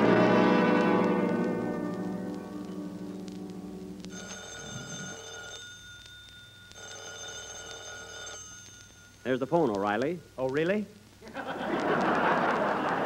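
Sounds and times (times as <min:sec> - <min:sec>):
orchestral brass chord: 0:00.0 - 0:04.0
telephone bell ringing: 0:04.1 - 0:09.5.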